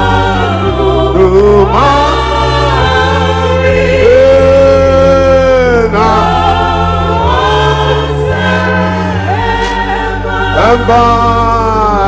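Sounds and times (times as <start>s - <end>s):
choir singing long held notes: 0.0s - 12.0s
sustained bass notes: 0.0s - 12.0s.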